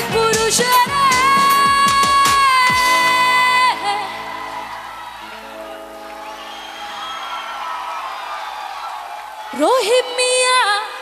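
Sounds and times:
live band playing: 0.0s - 7.8s
crowd cheering and whooping: 3.5s - 10.2s.

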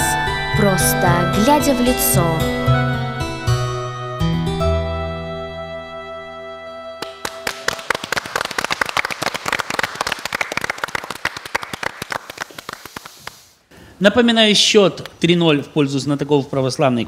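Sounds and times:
music held chord: 0.0s - 7.6s
small group clapping: 7.0s - 13.7s.

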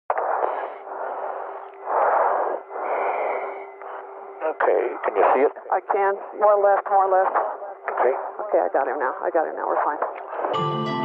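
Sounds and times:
radio static rushing: 0.1s - 10.5s
faint steady hum: 0.1s - 10.7s.

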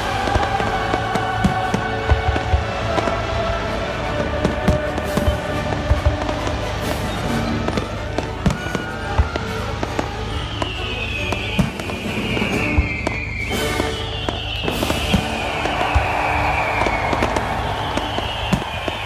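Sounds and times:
falling firework whistles: 0.0s - 3.6s, 4.2s - 19.0s
fireworks bangs and crackles: 0.0s - 19.0s
music: 0.0s - 19.0s.

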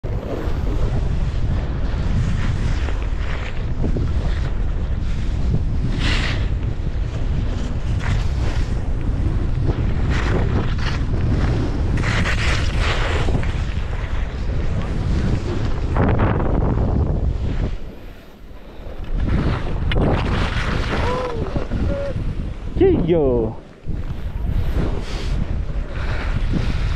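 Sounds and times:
wind buffeting microphone: 0.0s - 26.9s
skis scraping through snow: 0.1s - 22.6s, 23.3s - 26.9s.

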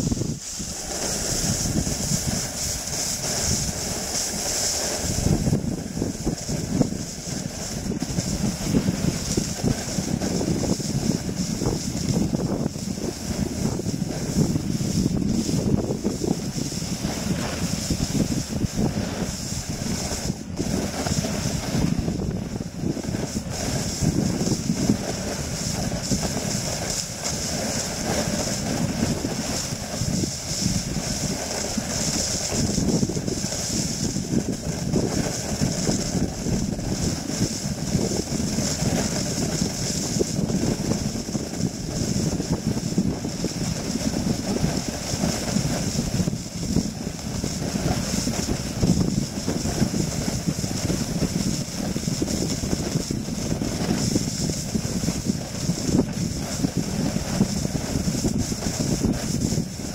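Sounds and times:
snowboard scraping on snow: 0.0s - 59.9s
wind buffeting microphone: 0.0s - 59.9s.

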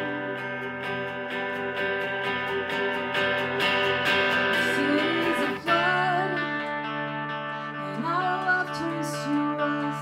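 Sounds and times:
electric guitar rhythmic pattern: 0.0s - 10.0s.

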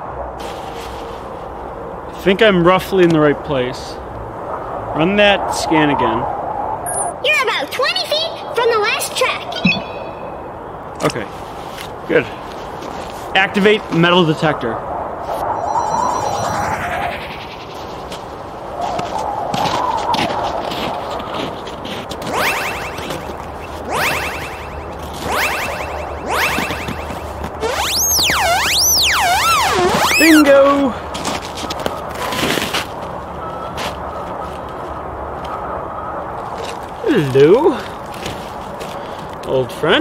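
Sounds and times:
electronic scanning sweeps: 6.9s - 7.2s, 15.3s - 18.4s, 22.3s - 30.5s
warbling electronic tone: 9.6s - 10.5s, 15.3s - 18.2s, 22.3s - 30.5s
electronic power-up sweep: 15.4s - 18.1s, 22.3s - 30.5s.

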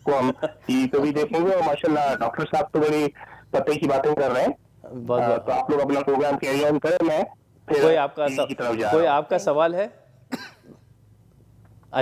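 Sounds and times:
person coughing: 10.3s - 10.9s.

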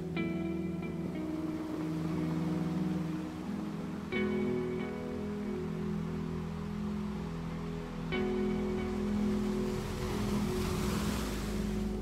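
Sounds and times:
soft music sustained chord: 0.0s - 12.0s
surf washing in: 0.0s - 12.0s.

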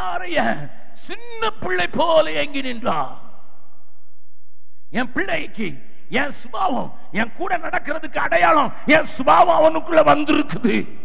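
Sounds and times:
man speaking through a microphone: 0.0s - 3.2s, 5.0s - 11.0s.

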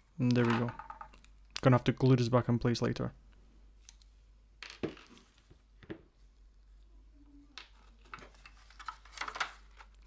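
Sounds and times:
plastic parts clicking and knocking: 0.3s - 1.4s.

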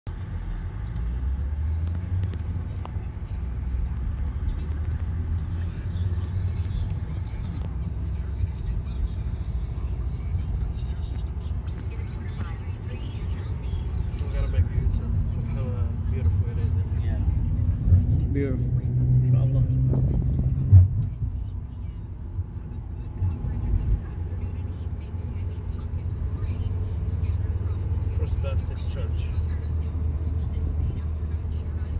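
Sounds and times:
road and engine rumble in car: 0.1s - 31.9s
voices in car: 0.1s - 31.9s.

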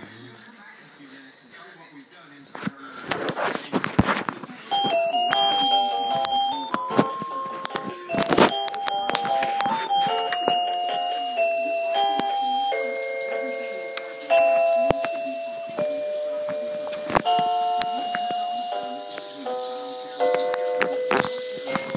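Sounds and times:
toy keyboard beeping melody: 4.7s - 21.9s.

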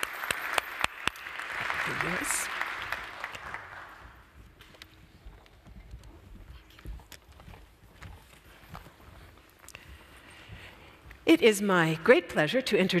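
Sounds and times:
audience applause: 0.0s - 4.3s
faint footsteps and knocks: 4.0s - 11.3s.

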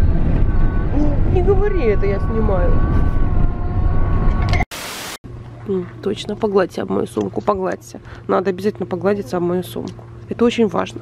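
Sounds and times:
wind buffeting in moving car: 0.0s - 4.6s.

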